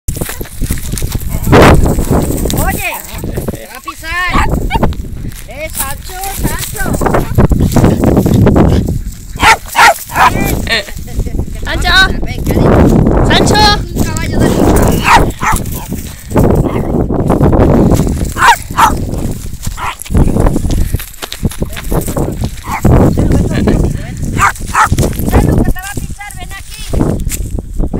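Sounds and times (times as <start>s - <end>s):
wind and movement rumble: 0.1s - 27.9s
dog barking: 3.8s - 4.9s, 9.4s - 10.5s, 15.0s - 15.6s, 18.4s - 19.0s, 19.8s - 20.0s, 22.6s - 22.9s, 24.4s - 25.5s
dog yelping: 3.8s - 4.9s, 9.4s - 10.4s, 15.0s - 15.6s, 18.4s - 19.0s, 22.6s - 22.9s, 24.4s - 25.0s.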